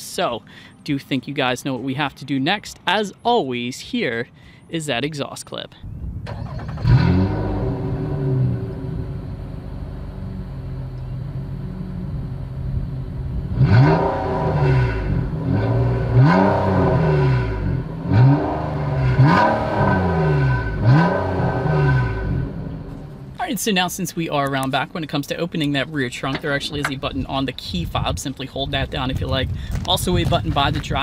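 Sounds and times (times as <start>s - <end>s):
car engine idling and revving: 6.2s - 28.0s.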